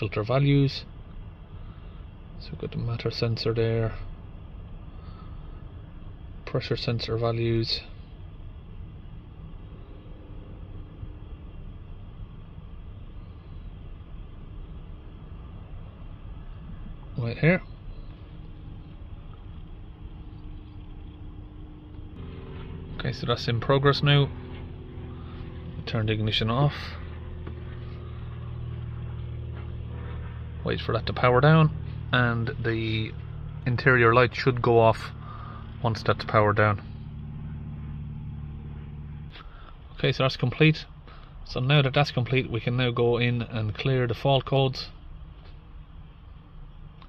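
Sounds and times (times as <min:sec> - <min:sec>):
faint hum: 0:00.0 - 0:47.0
low background rumble: 0:00.0 - 0:47.0.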